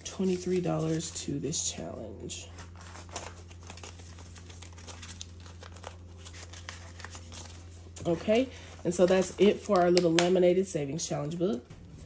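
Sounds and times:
paper bills and plastic rustling: 0:00.0 - 0:01.3, 0:02.4 - 0:10.4
steady low hum: 0:00.0 - 0:12.0.

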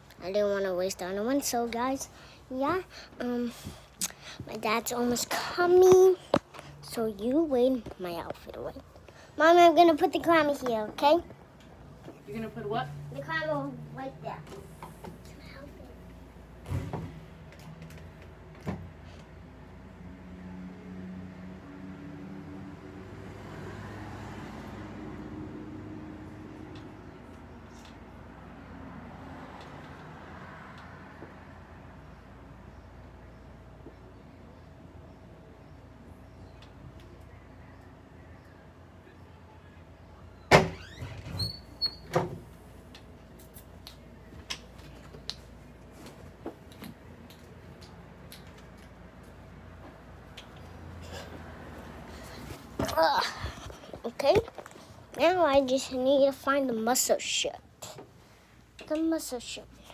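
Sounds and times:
door squeak: 0:40.5 - 0:42.4.

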